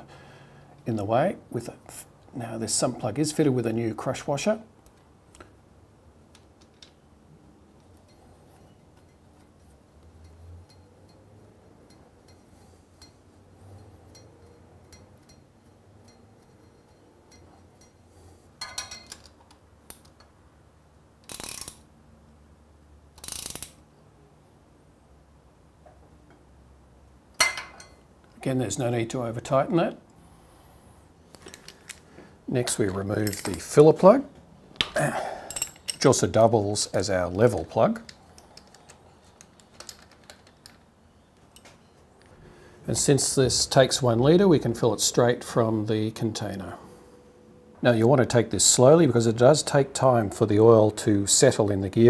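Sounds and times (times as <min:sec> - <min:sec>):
socket ratchet clicking: 0:21.2 - 0:21.9, 0:23.2 - 0:23.8.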